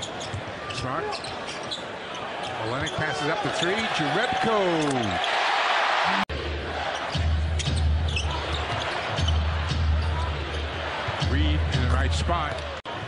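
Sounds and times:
crowd noise: 0.0s - 13.0s.

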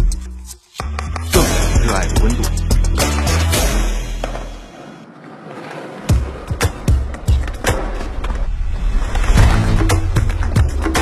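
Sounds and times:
background music with heavy beat: 0.0s - 4.3s, 9.4s - 11.0s
skateboards rolling: 4.1s - 11.0s
skateboards clacking on ground: 4.2s - 8.4s.

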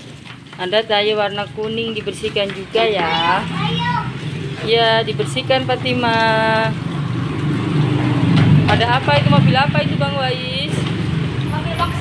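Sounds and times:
tap water splashing on plastic: 0.0s - 11.5s.

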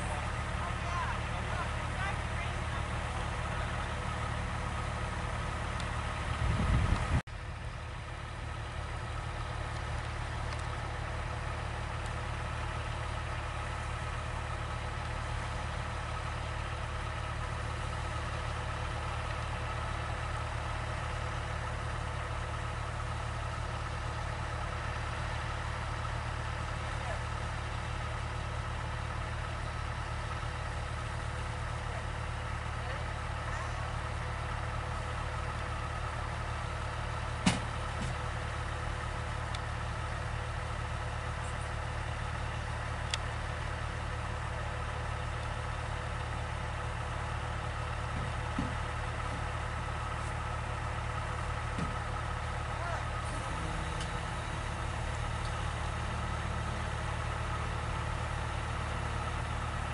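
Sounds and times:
vehicle engine idling: 0.0s - 59.9s.

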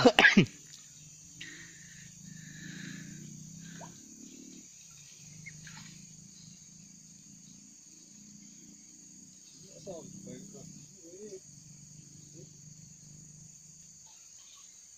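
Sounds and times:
insect chirps: 0.0s - 14.9s
insect chorus: 0.0s - 14.9s.

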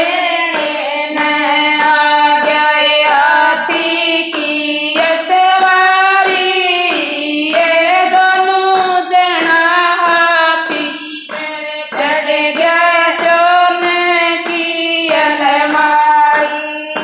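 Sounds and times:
hand claps: 0.0s - 17.0s
women singing devotional song: 0.0s - 17.0s.

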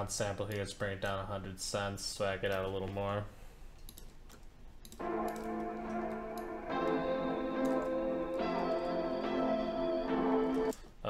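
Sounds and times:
dark drill melody: 5.0s - 10.7s.

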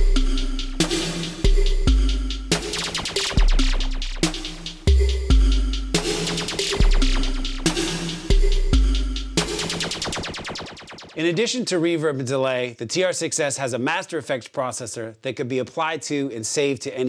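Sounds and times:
deep bass drum: 0.0s - 10.6s
drum machine electronic beat: 0.0s - 11.6s
bright hi-hat hits: 0.0s - 11.8s
fast run of repeating hits: 2.5s - 4.9s, 5.5s - 11.5s.

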